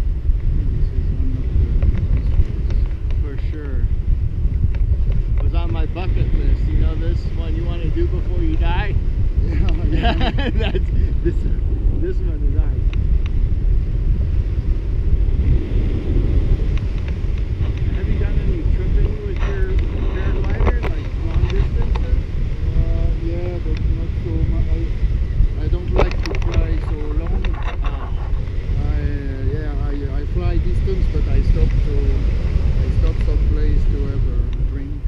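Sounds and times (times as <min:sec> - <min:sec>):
wind rumbling on microphone: 0:00.0 - 0:35.0.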